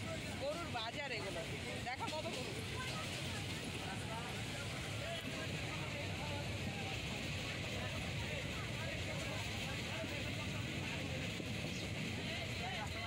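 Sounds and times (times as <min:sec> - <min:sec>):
train running noise inside carriage: 0:00.0 - 0:13.0.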